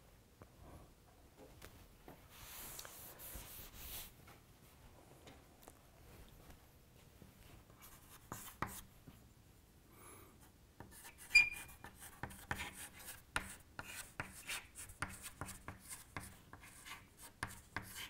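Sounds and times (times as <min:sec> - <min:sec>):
chalk scratching on chalkboard: 0:07.8 - 0:08.9, 0:10.8 - 0:18.0
chalk taps: 0:07.8 - 0:08.9, 0:10.8 - 0:18.0
chalk squeak: 0:11.0 - 0:13.1.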